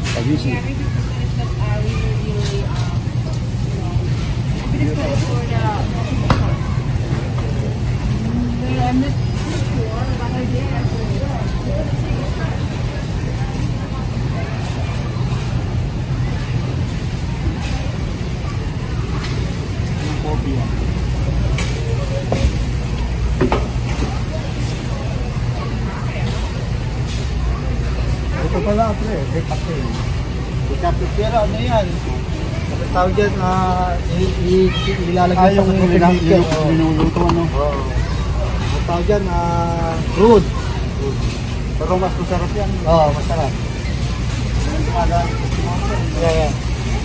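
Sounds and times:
distant shoppers' voices: 0.0s - 47.0s.

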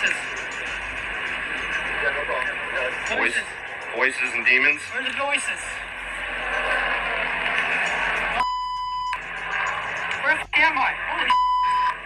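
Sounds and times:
noisy body camera audio: 0.0s - 12.0s
censor bleep: 11.3s - 12.0s.

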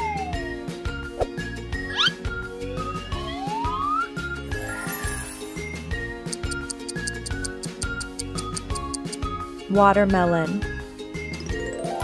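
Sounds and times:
cheerful children's music: 0.0s - 12.0s
whistle-like cartoon sound effects: 1.8s - 5.2s.

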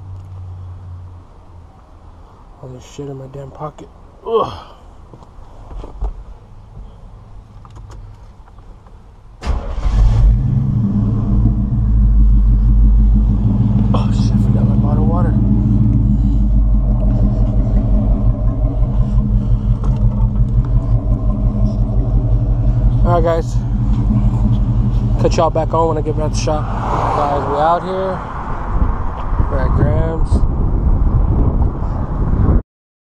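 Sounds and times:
truck engine starting: 9.4s - 28.8s
engine idling rumble: 9.4s - 29.1s.

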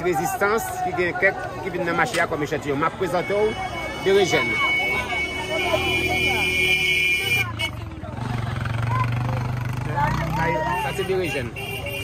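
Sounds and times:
crowd chatter: 0.0s - 12.0s
vehicle engine humming: 0.0s - 12.0s.

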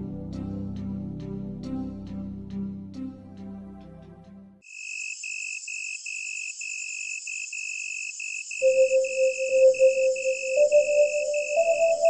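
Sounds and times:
insect chirring: 4.6s - 12.0s
tonal music: 8.6s - 12.0s.

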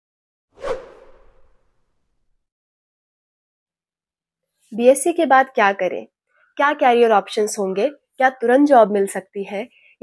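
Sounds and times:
whoosh sound effect: 0.6s - 1.8s.

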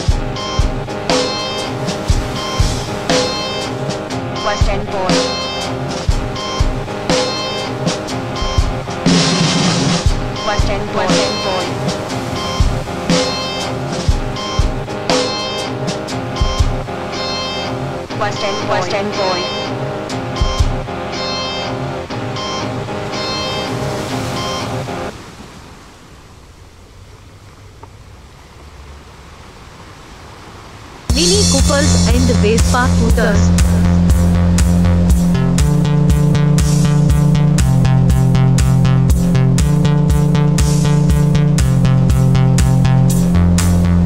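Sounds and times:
drum hits: 0.0s - 17.0s, 20.1s - 21.0s
live band playing: 0.0s - 24.6s, 31.1s - 41.2s.

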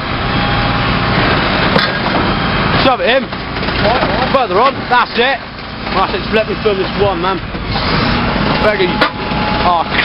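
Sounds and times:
refuse truck engine and hydraulics: 0.0s - 10.0s.

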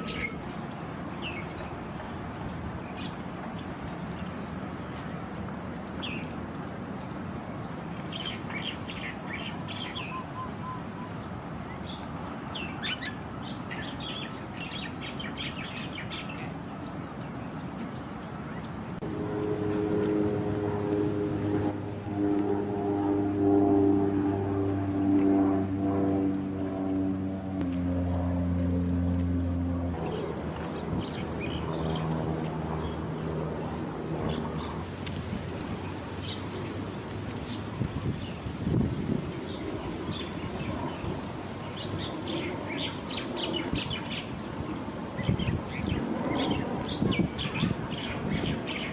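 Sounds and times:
small birds chirping: 0.0s - 1.7s, 45.2s - 48.9s
outdoor background noise: 0.0s - 48.9s
low droning hum: 19.0s - 37.6s.

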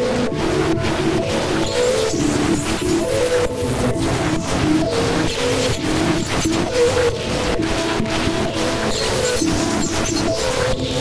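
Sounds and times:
harsh electronic noise music: 0.0s - 11.0s
synth held notes: 0.0s - 11.0s.

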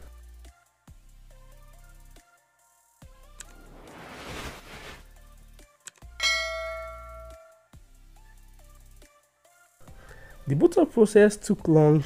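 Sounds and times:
light background music: 0.0s - 12.0s
whoosh: 3.5s - 5.1s
bell-like chime: 6.2s - 7.8s.

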